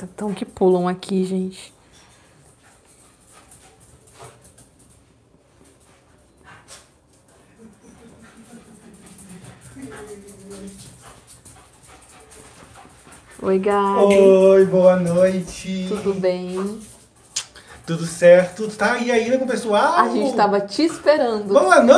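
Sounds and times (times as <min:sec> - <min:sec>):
dog whimpering: 0:19.3 - 0:20.7.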